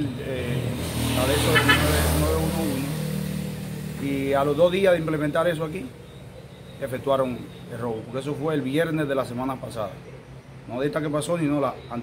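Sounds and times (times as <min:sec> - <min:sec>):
passing vehicle engine hum: 0:00.0 - 0:10.5.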